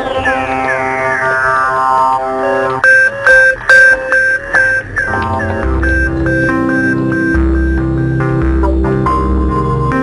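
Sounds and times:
background music of short pitched notes: 0.0 - 10.0.

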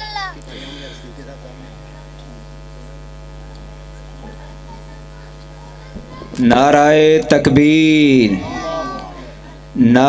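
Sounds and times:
faint distant voices: 0.0 - 9.8
mains hum: 0.0 - 10.0.

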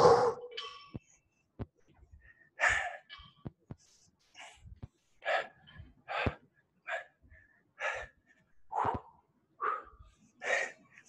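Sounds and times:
man gasping breaths: 2.1 - 3.1, 4.4 - 10.8.

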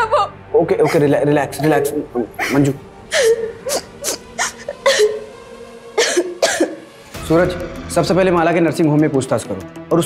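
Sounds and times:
faint music drone: 0.0 - 9.5
woman gasping or sobbing: 2.4 - 5.3.

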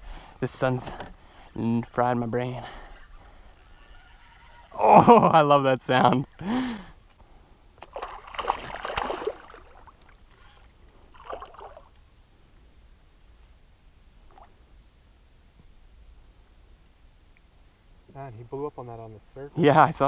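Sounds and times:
fish splashing at water surface: 7.8 - 10.1
short water sounds: 7.8 - 12.0.

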